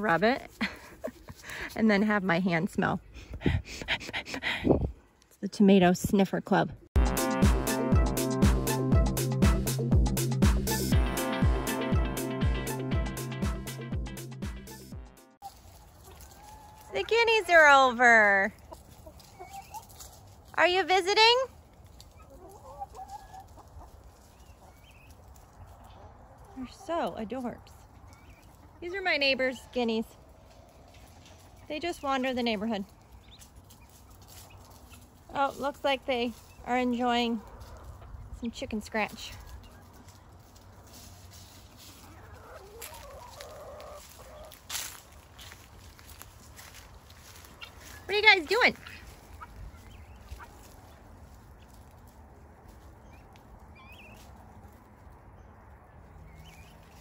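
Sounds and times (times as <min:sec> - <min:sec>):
guineafowl calls: 0:18.6 - 0:20.1, 0:22.1 - 0:26.6, 0:40.9 - 0:48.1, 0:48.7 - 0:52.0, 0:52.7 - 0:54.4.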